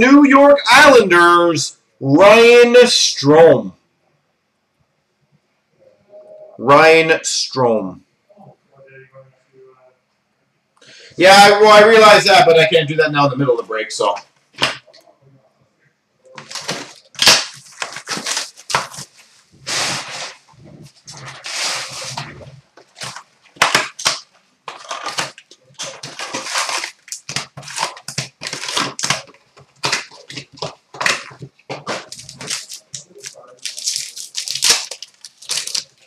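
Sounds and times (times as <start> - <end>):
wrappers crinkling and tearing: 16.4 - 36.0.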